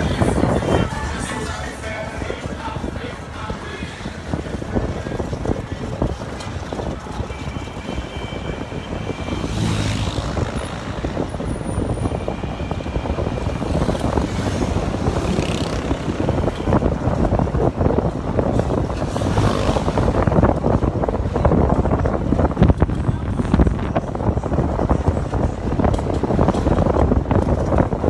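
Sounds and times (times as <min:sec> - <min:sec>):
motorcycle engine and road noise: 0:00.0 - 0:28.0
wind on microphone: 0:00.0 - 0:28.0.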